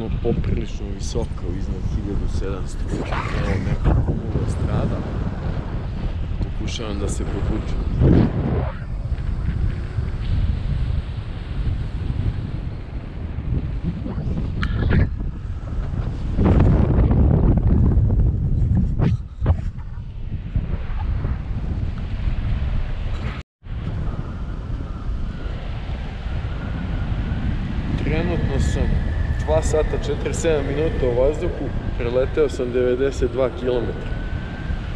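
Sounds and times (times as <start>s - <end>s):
wind buffeting microphone: 0.0s - 34.9s.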